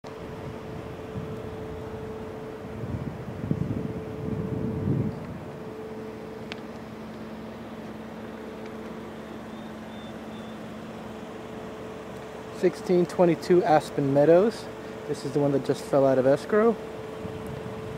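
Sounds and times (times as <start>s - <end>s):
machinery hum: 0.0s - 17.9s.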